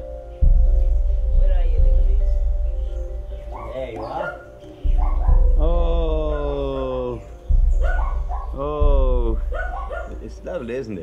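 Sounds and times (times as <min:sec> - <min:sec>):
low rumble: 0:00.4 - 0:03.4, 0:04.8 - 0:06.7, 0:07.5 - 0:10.2.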